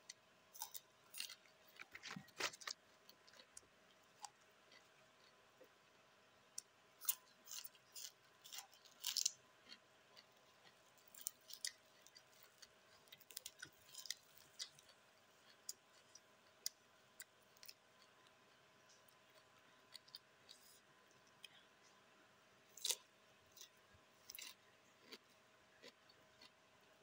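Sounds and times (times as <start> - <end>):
chewing crunchy raw vegetables: 0.1 - 5.8, 6.6 - 21.6, 22.7 - 27.0.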